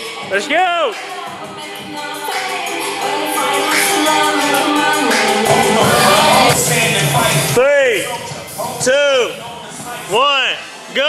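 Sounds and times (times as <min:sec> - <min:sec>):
upbeat background music: 0:00.0 - 0:11.0.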